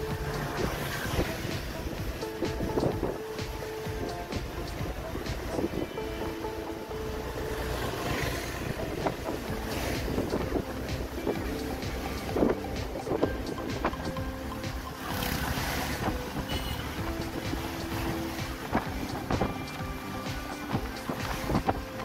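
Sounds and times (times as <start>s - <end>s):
engine and tyre rumble: 0.0s - 22.0s
passing traffic on wet road: 0.0s - 22.0s.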